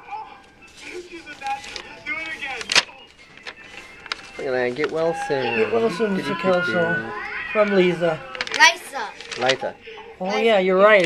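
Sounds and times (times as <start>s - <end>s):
stiff paper crackling: 0.3s - 9.8s.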